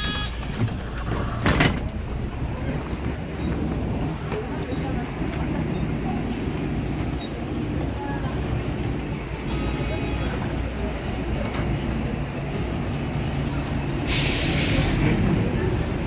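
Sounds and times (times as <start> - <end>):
bus engine idling: 0.0 - 16.0.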